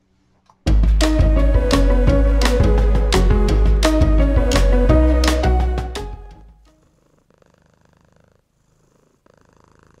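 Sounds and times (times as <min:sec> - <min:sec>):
piano jingle: 0:00.7 - 0:06.7
faint cat purr: 0:06.7 - 0:10.0.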